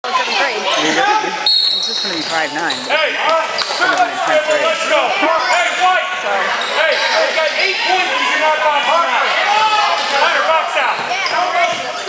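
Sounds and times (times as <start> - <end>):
crowd shouting and chatter: 0.0 - 12.0
referee's whistle: 1.4 - 2.2.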